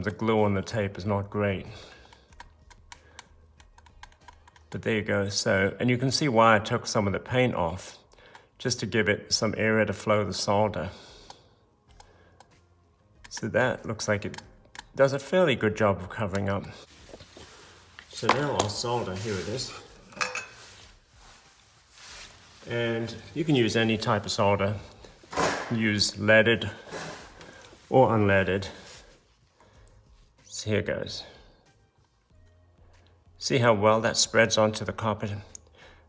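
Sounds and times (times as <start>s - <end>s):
metal tool light clicks and taps: 2.0s - 4.7s, 14.2s - 14.9s.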